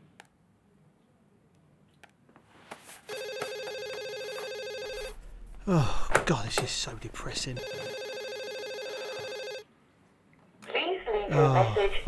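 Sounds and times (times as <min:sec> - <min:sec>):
telephone ringing with warbling trill: 0:03.1 - 0:05.2, 0:07.6 - 0:09.6.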